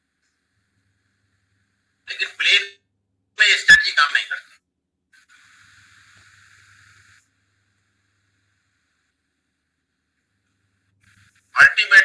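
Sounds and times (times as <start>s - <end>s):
faint steady hiss: 0.0s - 2.7s, 3.4s - 12.0s
faint low hum: 0.0s - 12.0s.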